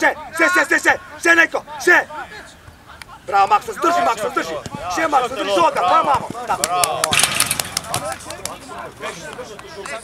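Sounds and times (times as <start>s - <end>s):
faint voices calling: 0.0s - 10.0s.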